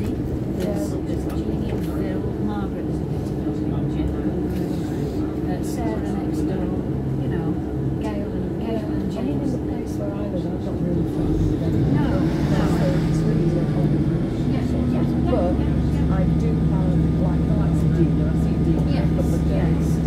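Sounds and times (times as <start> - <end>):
passengers talking: 0.0 - 20.0
train diesel engine droning: 0.0 - 20.0.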